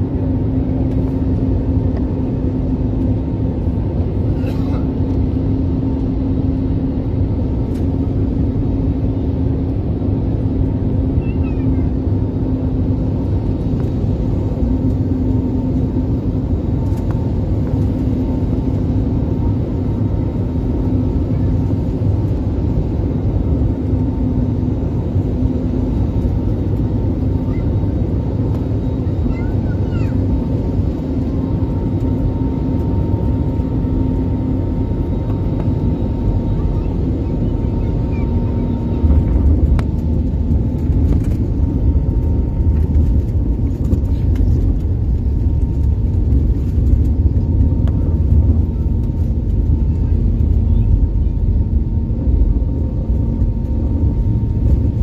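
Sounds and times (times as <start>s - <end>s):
jet engine and airflow drone: 0.0s - 55.0s
wheels rumbling on runway: 0.0s - 55.0s.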